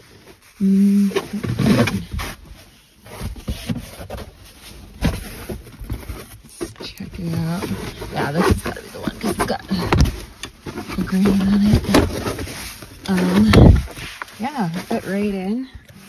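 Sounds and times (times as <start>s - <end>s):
rubber liners knocking and scraping: 1.1s - 2.4s, 3.1s - 16.0s.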